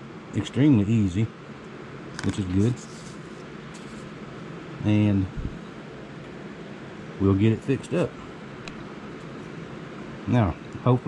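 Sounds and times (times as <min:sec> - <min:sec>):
room noise hum: 0:00.0 - 0:11.0
faint rustle: 0:02.3 - 0:04.3.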